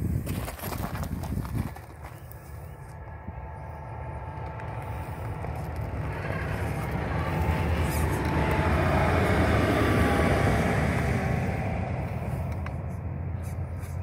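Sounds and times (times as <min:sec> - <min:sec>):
tyres crunching through gravel: 0:00.0 - 0:11.2.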